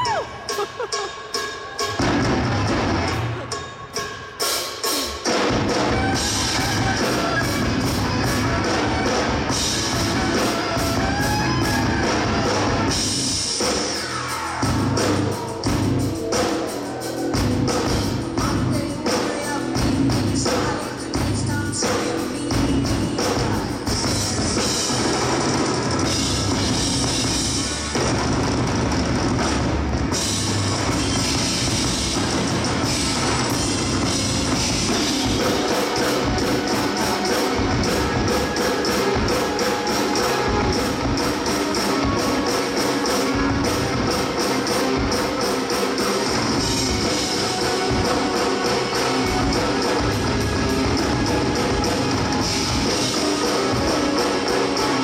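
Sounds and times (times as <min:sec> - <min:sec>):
drum kit with cymbals: 0:00.0 - 0:55.0.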